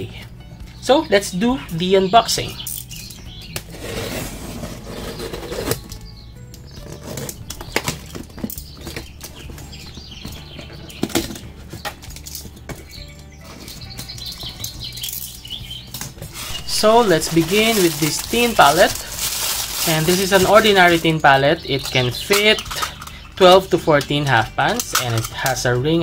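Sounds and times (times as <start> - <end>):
box cutter slicing packing tape: 3.6 - 6.0
cardboard box flaps scraping and knocking: 3.7 - 5.9.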